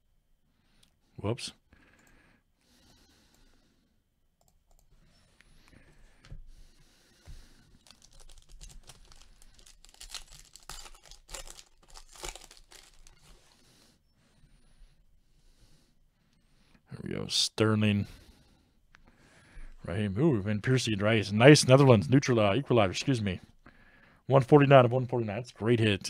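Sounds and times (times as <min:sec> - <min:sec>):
plastic wrapping crinkling and tearing: 0:07.8 - 0:13.6.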